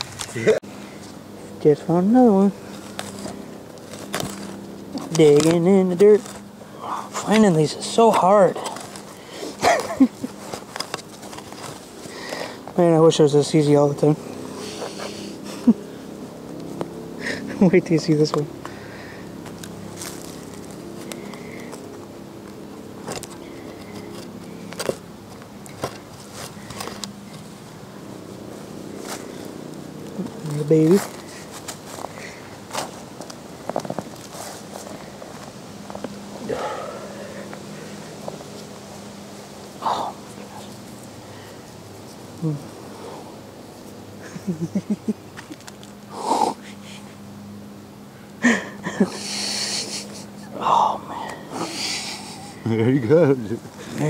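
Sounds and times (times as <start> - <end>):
person exhaling breathily: 36.4 - 37.5.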